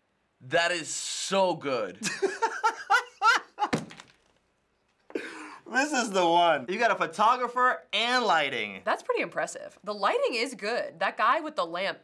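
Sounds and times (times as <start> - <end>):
man laughing hard: 2.0 - 3.8
thump against desk: 3.7 - 4.2.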